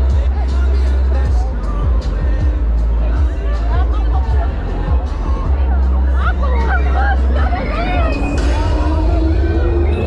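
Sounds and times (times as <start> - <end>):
crowd chatter: 0.0 - 10.0
loud fairground music: 0.0 - 10.0.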